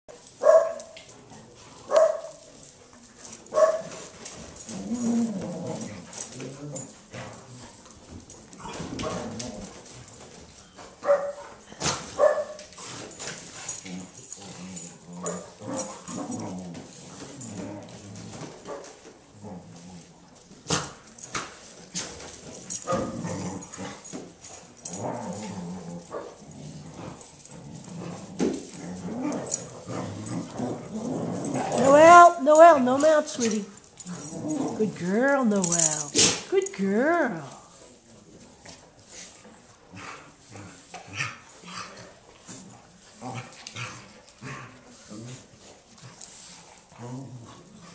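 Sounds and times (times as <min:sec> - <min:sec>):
dogs barking: 0:00.4 - 0:01.0, 0:01.9 - 0:02.4, 0:03.5 - 0:03.9, 0:11.0 - 0:11.4, 0:12.2 - 0:12.6
dogs play-fighting vocalizations: 0:01.0 - 0:32.4, 0:33.0 - 0:35.0, 0:37.5 - 0:47.9.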